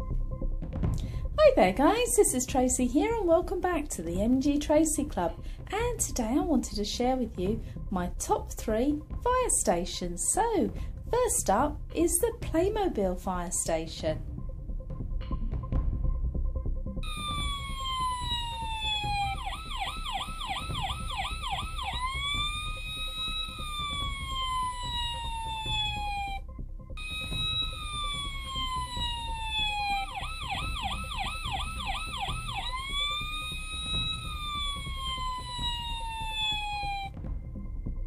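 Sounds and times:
electronic toy siren: 17.0s - 26.4s, 27.0s - 37.2s.

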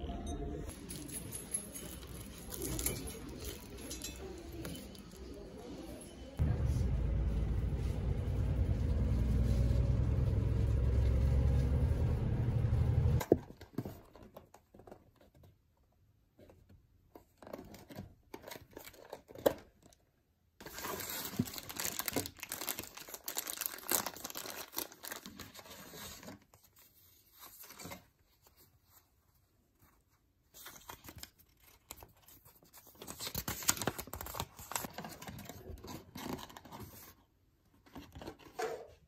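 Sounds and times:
bus interior rumble: 6.4s - 13.2s
plastic packaging crinkling and tearing: 20.6s - 26.4s, 30.6s - 37.0s.

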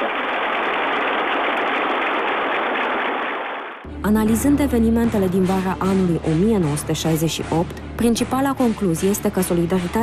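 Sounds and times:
large crowd applauding: 0.0s - 3.8s.

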